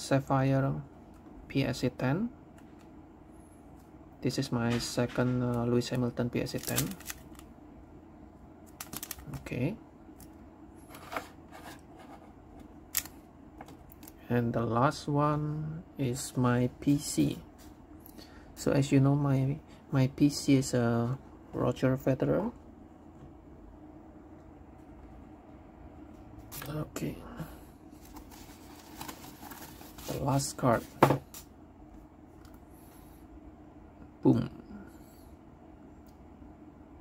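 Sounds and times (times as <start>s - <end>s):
plastic sleeve rustling: 8.7s - 9.3s, 27.9s - 31.4s.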